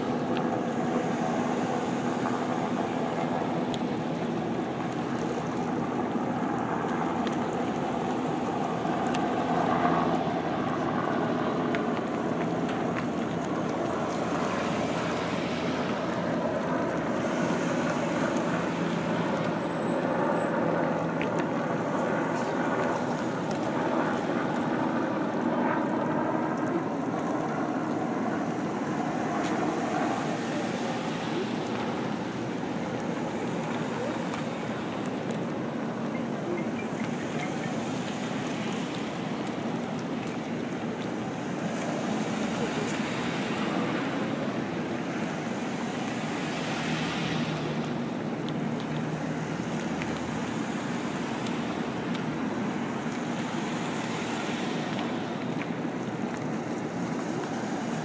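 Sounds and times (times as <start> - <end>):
cars passing by: 0.0 - 58.0.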